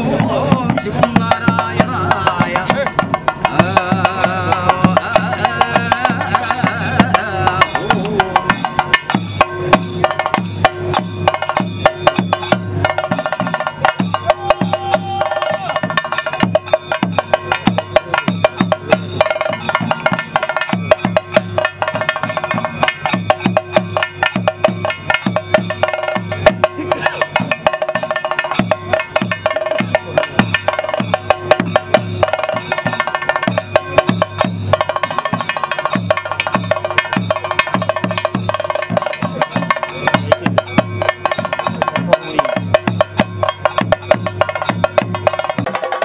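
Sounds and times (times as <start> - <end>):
fast drum ensemble: 0.0 - 46.0
steady ringing tone: 4.2 - 46.0.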